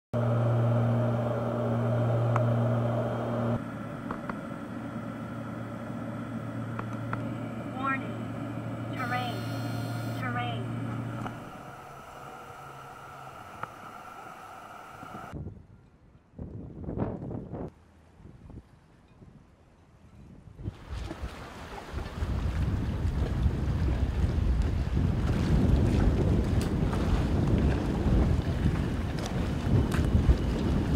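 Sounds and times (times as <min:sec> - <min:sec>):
propeller aircraft cabin drone: 0:00.2 - 0:15.4
short bursts of noise: 0:06.9 - 0:15.3
voices: 0:07.6 - 0:15.3.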